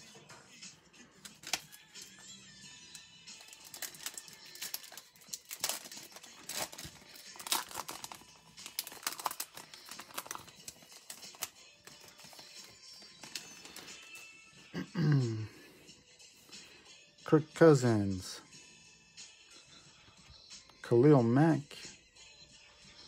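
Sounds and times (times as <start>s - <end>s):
foil wrapper crinkling: 3.4s - 14.2s.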